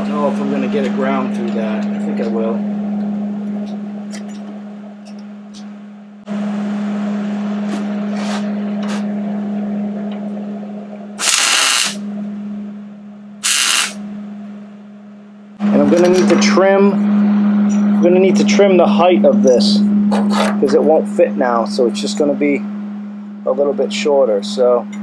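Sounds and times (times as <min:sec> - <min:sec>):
arc welding crackle: 0:11.2 - 0:12.0, 0:13.4 - 0:14.0
welder humming: 0:11.2 - 0:12.2, 0:13.4 - 0:14.1.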